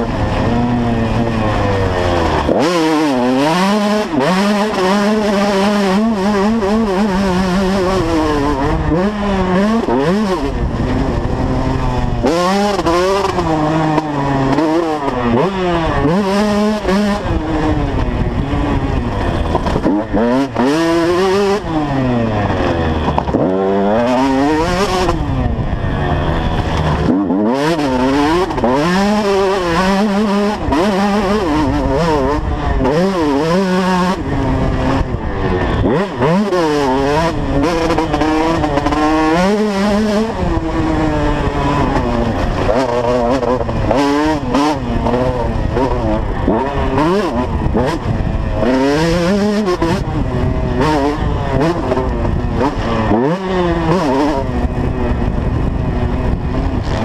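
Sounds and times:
motocross engine revving: 0.0 - 57.0.

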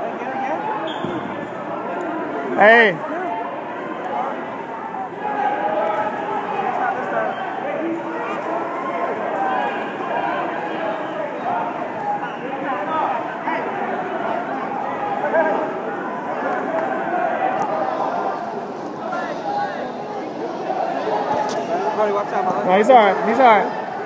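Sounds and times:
chatter of many voices: 0.0 - 24.0.

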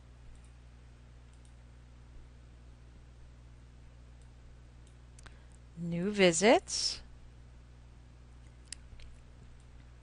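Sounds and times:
low steady hum: 0.0 - 10.0
faint computer mouse clicks: 1.3 - 1.6
woman speaking: 5.8 - 7.1.

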